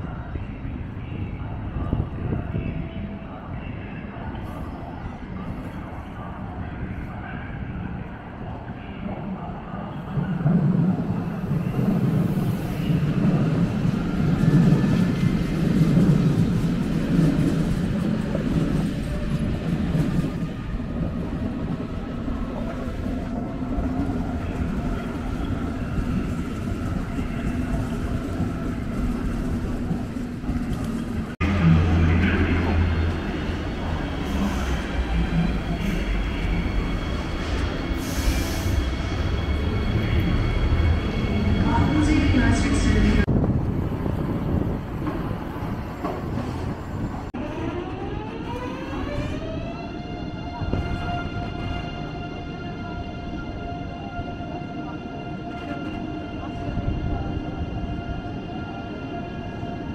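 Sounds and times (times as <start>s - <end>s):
train low rumble: 0.0s - 59.9s.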